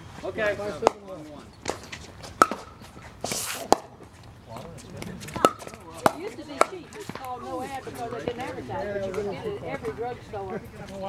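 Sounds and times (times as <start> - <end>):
paddles striking plastic ball: 1.7 - 2.7
shoe scuffing hiss: 2.8 - 3.8.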